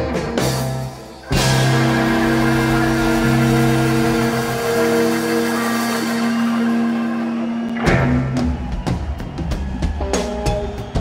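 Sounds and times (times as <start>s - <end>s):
rock band holding a chord: 0.0s - 11.0s.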